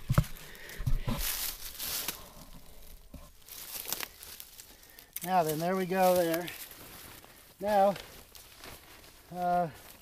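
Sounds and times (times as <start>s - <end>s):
fabric and dry leaves rustling: 0.0s - 10.0s.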